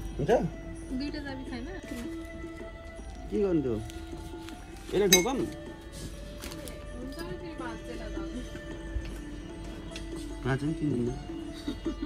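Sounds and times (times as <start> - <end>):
background music: 0.0 - 12.0
hard object clinking: 5.0 - 5.7.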